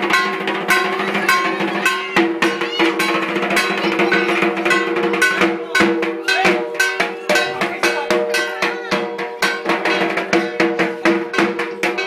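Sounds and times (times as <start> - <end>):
clanging metal percussion: 0.0 - 12.0
drums: 0.0 - 12.0.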